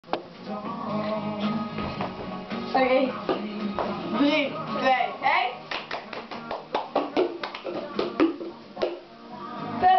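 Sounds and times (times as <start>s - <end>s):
hand claps: 5.6s - 9.0s.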